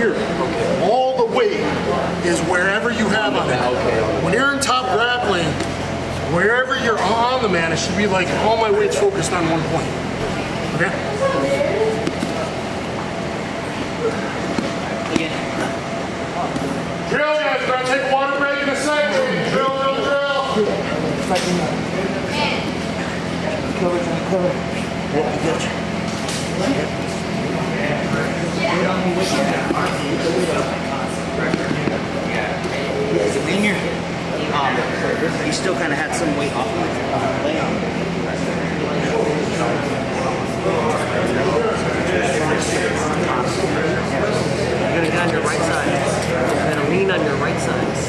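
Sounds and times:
faint indistinct voices: 0.0 - 48.0
room noise: 0.0 - 48.0
steady low hum: 0.0 - 48.0.

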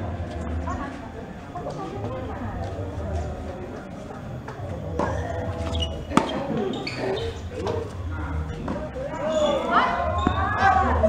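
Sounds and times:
people talking: 0.0 - 11.0
tennis ball struck: 5.0 - 6.6.

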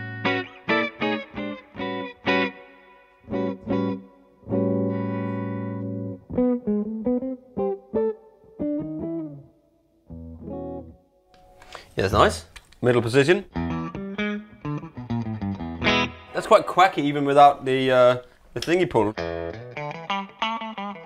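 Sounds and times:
clean electric guitar: 0.0 - 11.8, 13.5 - 16.5, 19.1 - 21.0.

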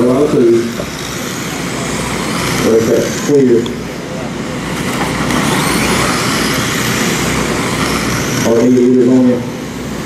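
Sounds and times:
rc race cars rushing past: 0.0 - 10.0.

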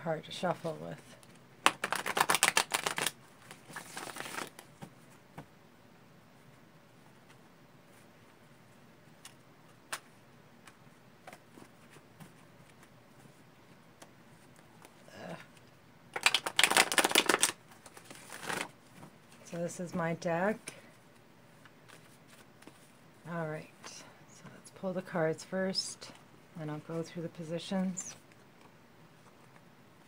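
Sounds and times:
cards being shuffled: 1.6 - 4.9, 14.0 - 19.1.

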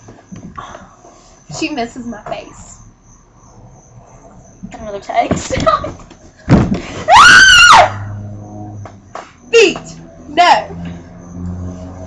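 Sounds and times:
girl screaming: 7.1 - 8.1.

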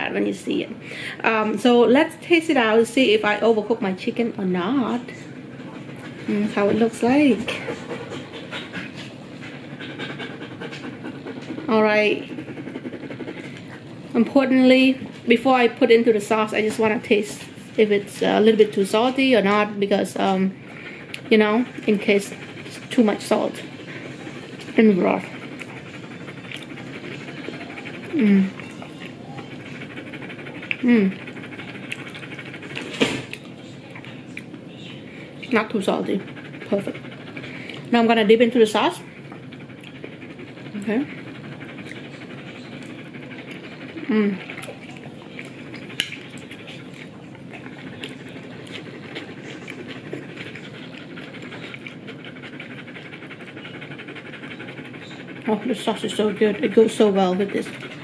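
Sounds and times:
dog panting: 0.0 - 58.0.

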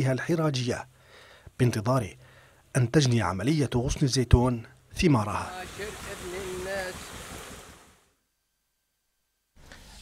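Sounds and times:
water hissing from hose leaks: 5.5 - 8.0.

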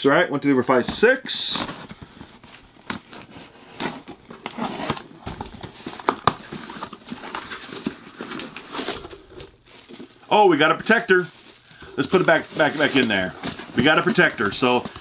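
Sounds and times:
packing rustling and crinkling: 1.4 - 15.0
plastic wrap crinkling: 1.5 - 15.0.

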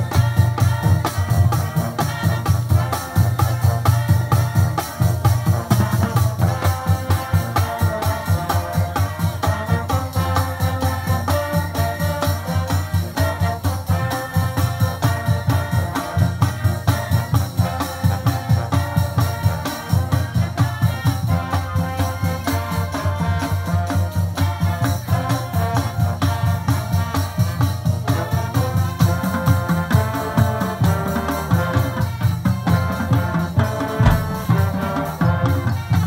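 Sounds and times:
steady drum beat: 29.4 - 36.0
sustained brass chords: 34.0 - 35.2.

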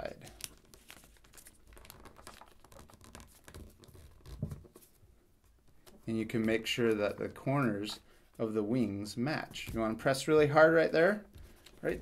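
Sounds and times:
paper crinkling: 0.1 - 7.2, 11.3 - 12.0.

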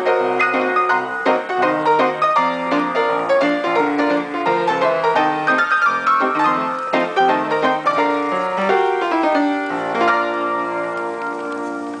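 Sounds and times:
player piano chord ringing: 0.0 - 12.0.

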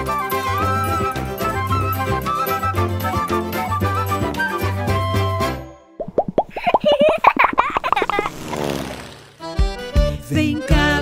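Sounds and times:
short popping blips: 6.0 - 8.3.

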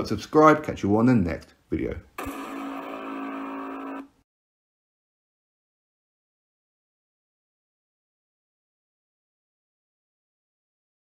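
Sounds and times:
held multi-pitch sound effect: 2.2 - 4.1.

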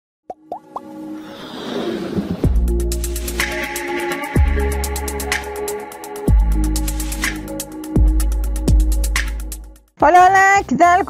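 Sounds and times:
intro music: 2.3 - 11.0.

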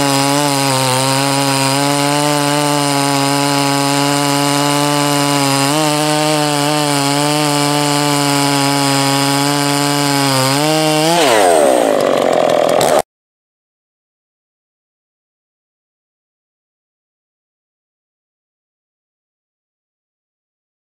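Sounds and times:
chainsaw cutting log: 0.0 - 13.1.

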